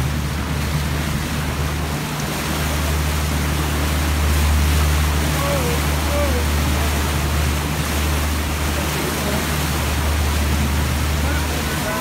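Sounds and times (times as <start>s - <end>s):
boat engine drone: 0.0s - 12.0s
water rushing in propeller wash: 0.0s - 12.0s.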